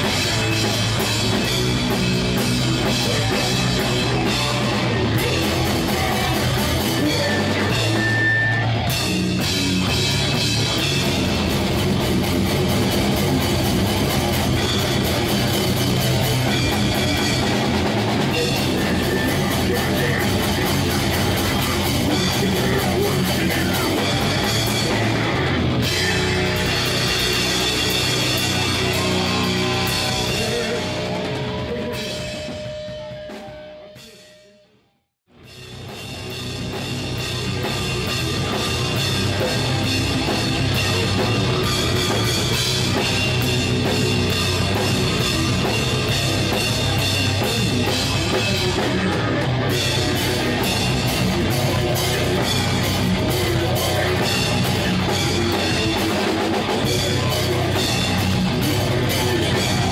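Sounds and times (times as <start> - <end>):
loud drum kit: 0.0 - 34.4, 35.3 - 59.9
heavy metal band playing: 0.0 - 34.5, 35.3 - 59.9
distorted guitars: 0.0 - 59.9.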